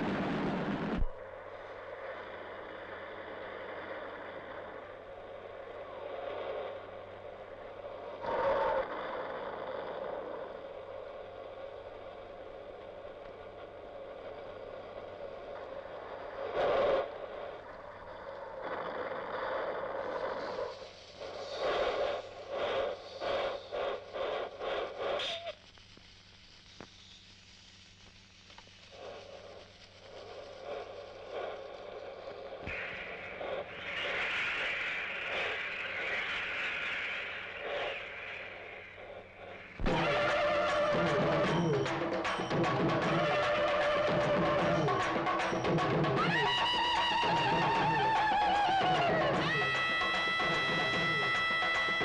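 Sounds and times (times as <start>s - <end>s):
fireworks spraying sparks hissing: 0.0s - 52.0s
sharp pops: 28.0s - 42.8s.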